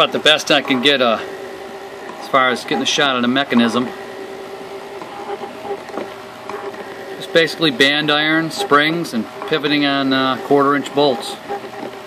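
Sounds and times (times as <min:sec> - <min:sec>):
small electric motor humming: 0:00.0 - 0:12.0.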